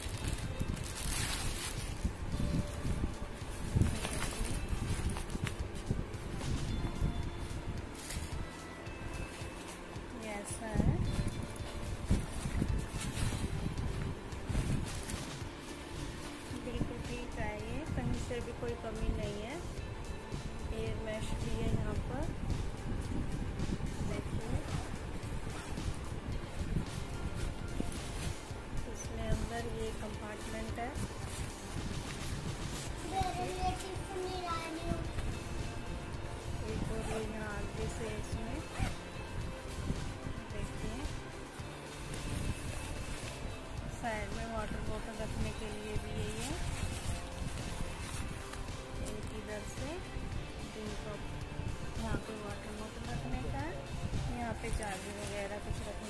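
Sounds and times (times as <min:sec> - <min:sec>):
backpack rustling and knocking: 0:00.0 - 0:16.7, 0:24.8 - 0:33.9
background music: 0:00.0 - 0:56.0
backpack zipper opening: 0:38.6 - 0:39.4.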